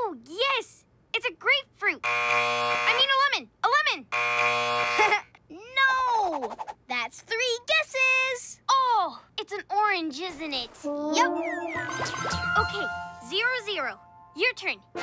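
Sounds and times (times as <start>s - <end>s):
wrong answer buzzer: 2.0s - 3.1s, 4.0s - 5.2s
wordless cartoon voice sounds: 10.2s - 13.5s.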